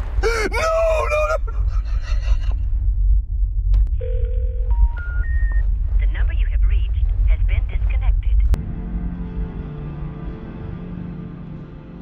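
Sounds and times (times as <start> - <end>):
deep rumble: 0.0 - 10.9
man shouting: 0.2 - 1.5
rising electronic beeps: 4.7 - 5.7.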